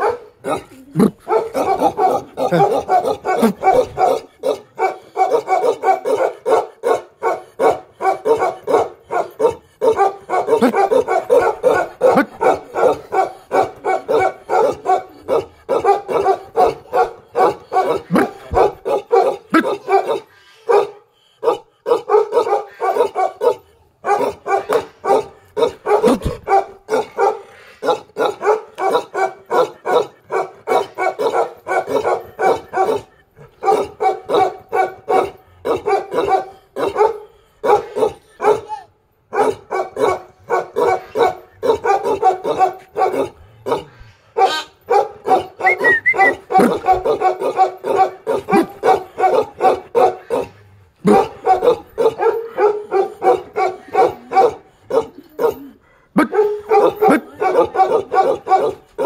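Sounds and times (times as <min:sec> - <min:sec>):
large dog barking rapidly: 0:00.0 - 0:38.7, 0:39.3 - 0:59.0.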